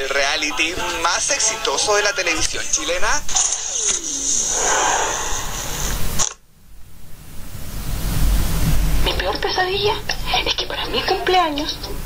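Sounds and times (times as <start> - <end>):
whooshing rushing hiss: 3.6 - 10.3
low rumble: 4.5 - 10.2.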